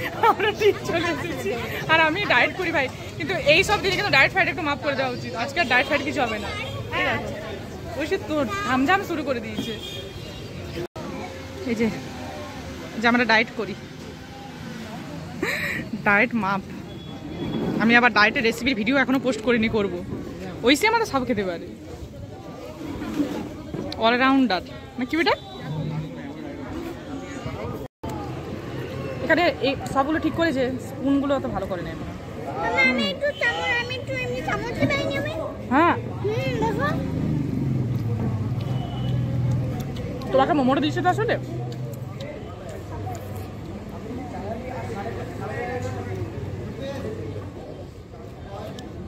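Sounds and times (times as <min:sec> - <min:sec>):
steady background noise: 0:00.0 - 0:49.0.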